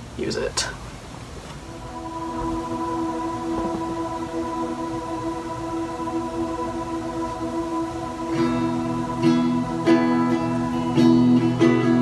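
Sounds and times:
ambient pad held tones: 0:01.6 - 0:12.0.

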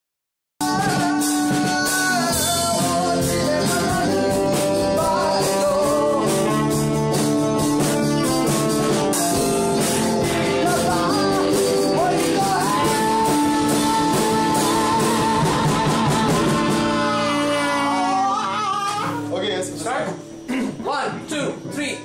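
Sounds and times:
man singing: 0:00.6 - 0:19.3
saxophone: 0:00.6 - 0:19.4
electric guitar: 0:00.6 - 0:21.8
drum kit beat: 0:00.6 - 0:22.0.

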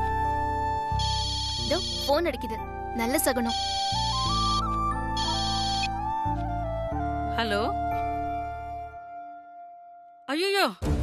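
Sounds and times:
background music: 0:00.0 - 0:11.0
phone trilling ringtone: 0:01.0 - 0:02.1, 0:03.5 - 0:05.9.

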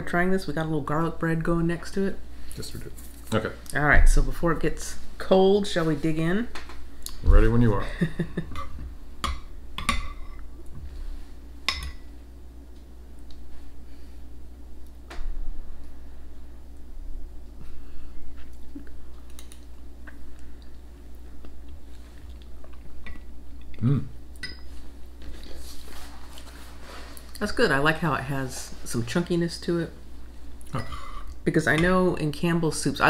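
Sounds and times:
steady low hum: 0:00.0 - 0:33.0
people chewing and eating: 0:17.6 - 0:24.4.

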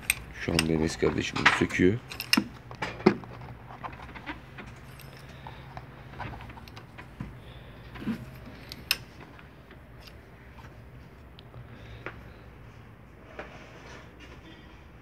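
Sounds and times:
metallic clinks of tools: 0:02.0 - 0:02.5, 0:04.7 - 0:05.7.

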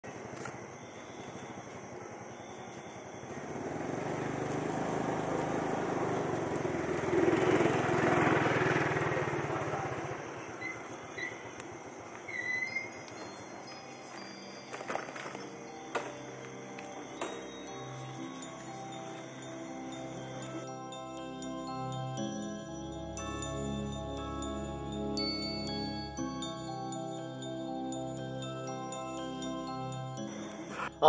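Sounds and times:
vehicle passing by: 0:03.2 - 0:11.7.

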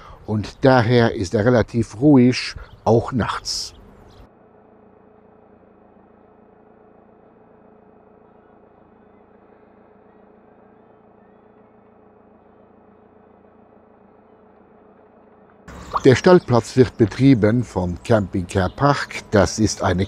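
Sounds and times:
engine idling: 0:00.0 - 0:20.0.

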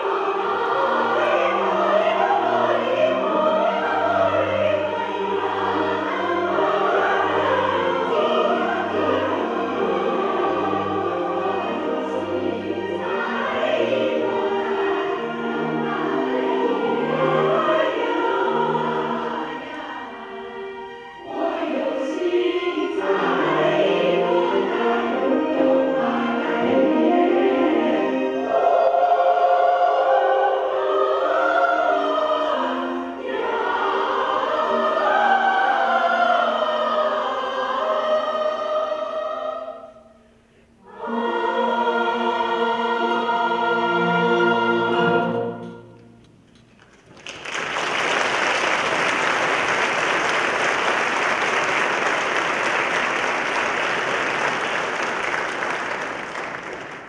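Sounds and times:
choir singing: 0:00.0 - 0:46.2.

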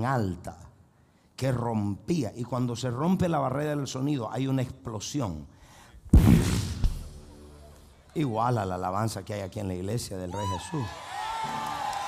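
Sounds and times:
explosion-like boom: 0:06.1 - 0:07.2
sharp crack: 0:06.1 - 0:07.3.

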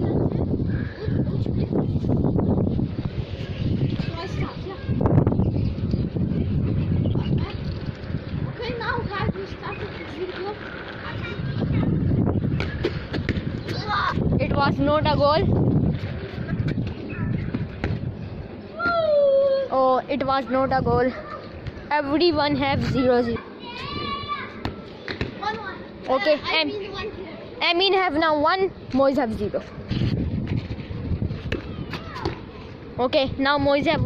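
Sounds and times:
wind buffeting microphone: 0:00.0 - 0:24.8, 0:25.4 - 0:34.0.

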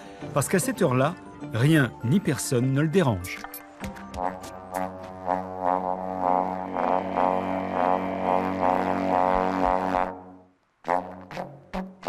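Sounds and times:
alphorn playing: 0:04.1 - 0:12.0.

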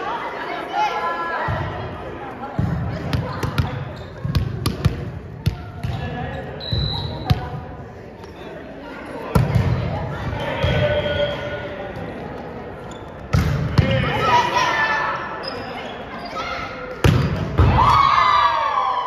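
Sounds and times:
players' voices: 0:00.0 - 0:19.0
sneaker squeaks: 0:03.1 - 0:07.5, 0:12.7 - 0:13.6, 0:15.3 - 0:16.9
referee's whistle blast: 0:06.6 - 0:07.3.

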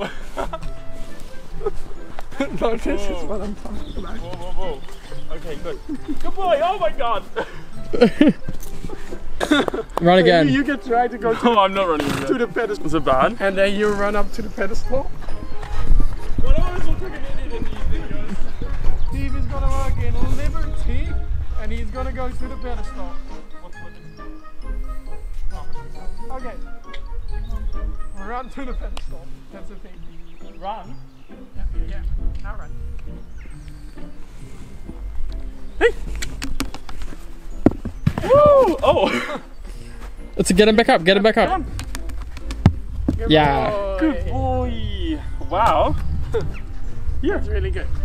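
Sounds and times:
pony hooves on sand: 0:00.4 - 0:10.8, 0:31.9 - 0:44.7
footfalls on sand: 0:37.0 - 0:39.2.

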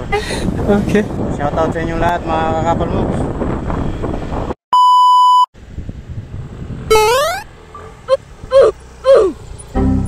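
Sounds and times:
electronic beep tone: 0:04.8 - 0:05.5, 0:06.9 - 0:07.5
motorbike riding: 0:05.6 - 0:10.0
rising pitched sound effect: 0:06.9 - 0:10.0.

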